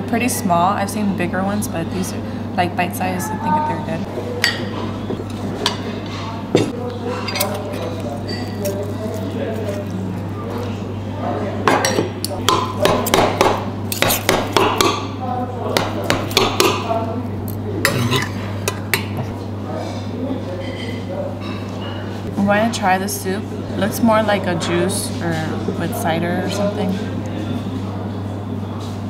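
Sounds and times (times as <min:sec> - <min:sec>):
dishes clinking: 0:04.1 - 0:09.9, 0:11.6 - 0:13.3, 0:16.2 - 0:22.2
cutlery scraping on metal platter: 0:07.0 - 0:09.9.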